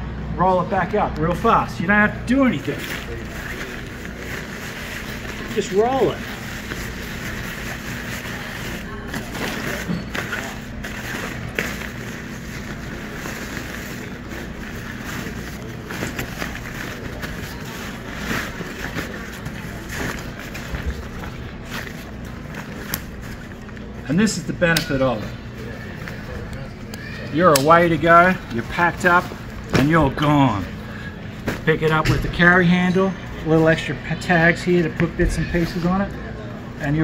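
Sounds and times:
nylon tarp rustling and crinkling: 2.5 - 23.6.

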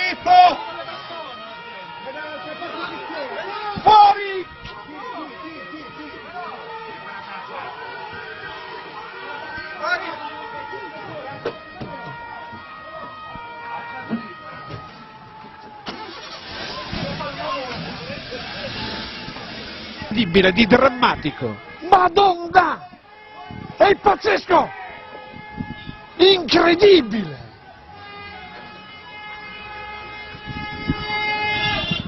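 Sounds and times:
warning siren: 0.0 - 32.0
landslide rumble: 16.0 - 20.5.

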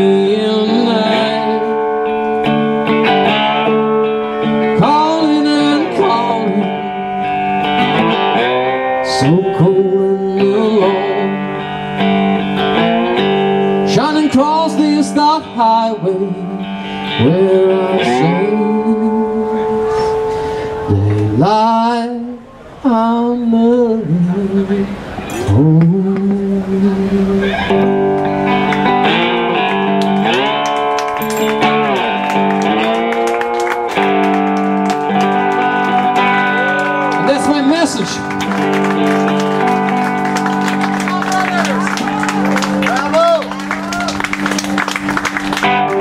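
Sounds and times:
quiet blues band: 0.0 - 46.0.

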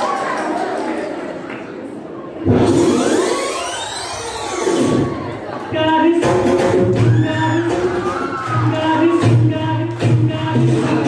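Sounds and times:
dance music over loudspeakers: 2.5 - 11.0.

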